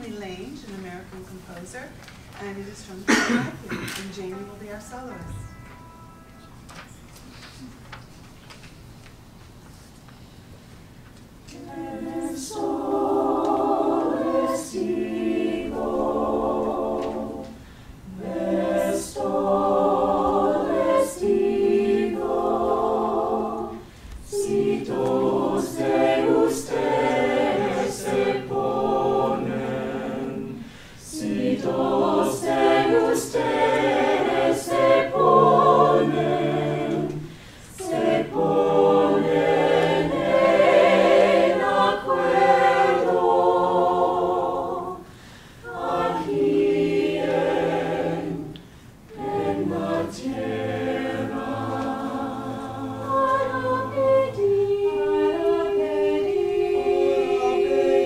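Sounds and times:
a cappella choir singing: 11.4 - 58.0.

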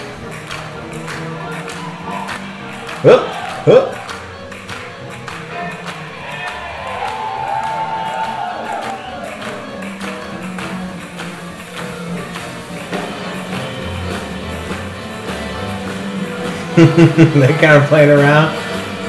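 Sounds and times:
accordion: 0.0 - 7.1, 8.2 - 19.0
saxophone: 0.0 - 16.9, 18.5 - 19.0
double bass: 0.0 - 19.0
drums: 0.0 - 19.0
swing band playing: 0.0 - 19.0.

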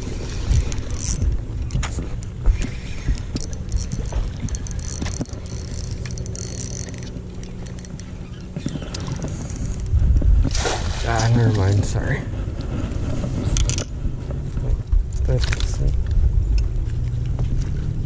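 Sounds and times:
steady low hum: 0.0 - 18.0
wind on microphone: 0.0 - 18.0
fish splashing at water surface: 10.5 - 11.4.

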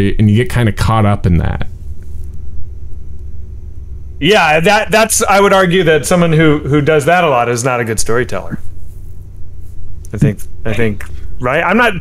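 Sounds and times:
faint hum: 0.0 - 12.0
low steady rumble: 0.0 - 12.0.

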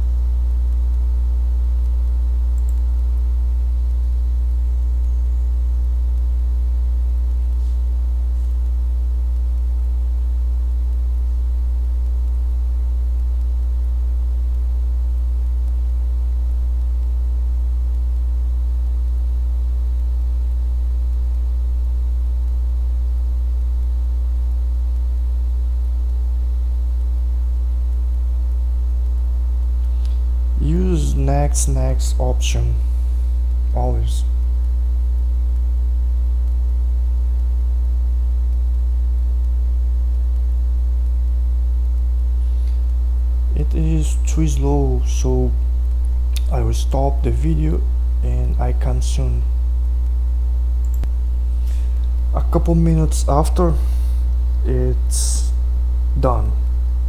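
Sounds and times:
electrical mains hum: 0.0 - 57.0
person speaking: 30.5 - 34.4, 43.5 - 45.6, 46.3 - 49.6, 51.7 - 56.7.

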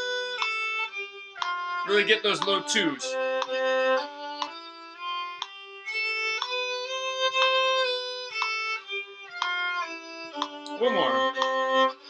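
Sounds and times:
violin playing a scale: 0.0 - 12.0.

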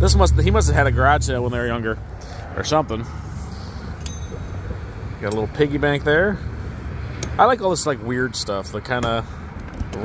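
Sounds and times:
low outdoor rumble: 0.0 - 10.0
light metallic clink: 4.0 - 5.5.

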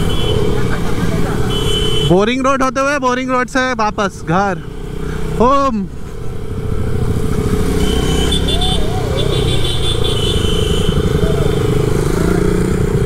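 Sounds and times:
other motorcycles alongside: 0.0 - 13.0
motorcycle engine cruising: 3.3 - 13.0.

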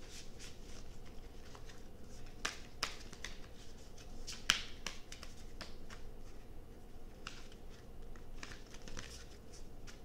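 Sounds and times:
cards being shuffled: 0.0 - 6.4, 7.2 - 10.0.

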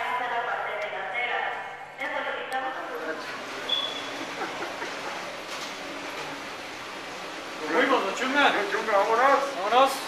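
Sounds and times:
airport terminal rushing hum: 0.0 - 10.0.

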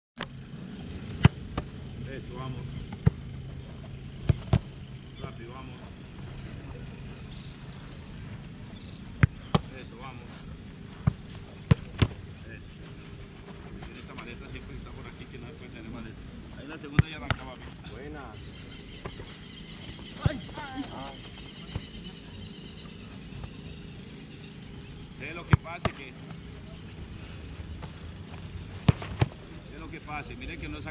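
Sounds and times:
faint low hum: 0.2 - 30.9
football kicked: 2.9 - 4.8, 8.7 - 12.4, 16.9 - 17.7, 19.0 - 22.0, 25.4 - 27.0, 27.8 - 29.7.

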